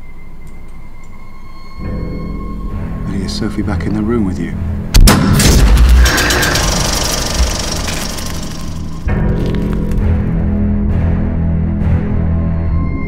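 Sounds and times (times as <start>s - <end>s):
sustained music tones: 4.6s - 13.0s
sudden loud boom: 5.0s - 9.8s
film projector clattering: 6.0s - 9.0s.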